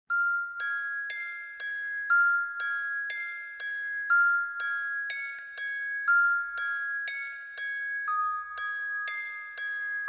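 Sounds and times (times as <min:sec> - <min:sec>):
chiming bell-like melody: 0:00.1 - 0:10.0.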